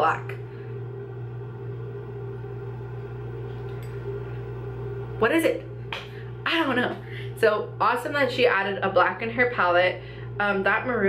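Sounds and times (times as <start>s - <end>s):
electrical hum with faint tones: 0.0s - 11.0s.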